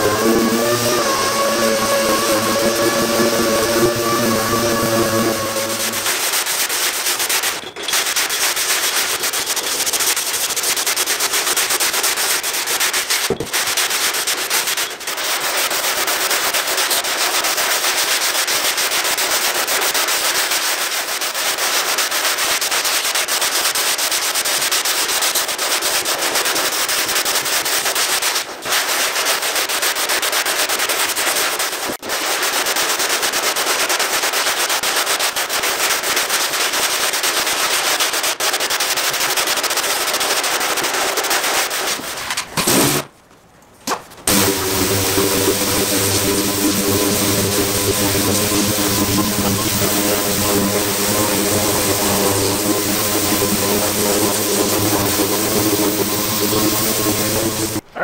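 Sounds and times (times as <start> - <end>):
steady machine hum: 0.0 - 6.3, 44.3 - 58.0
sandpaper rasping on block: 0.0 - 43.1, 44.3 - 57.8.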